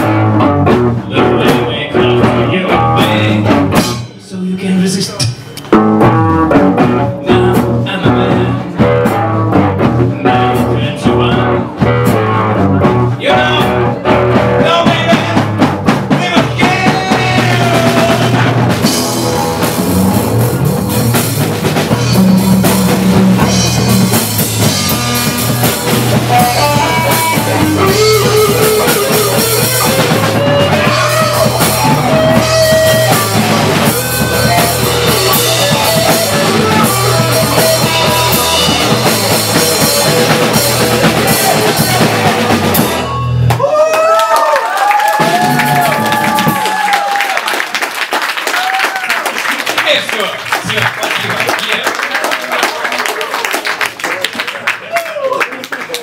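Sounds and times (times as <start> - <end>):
rock band playing live: 0.0 - 44.2, 44.8 - 47.2
guitar lead line sliding upward: 25.0 - 43.4.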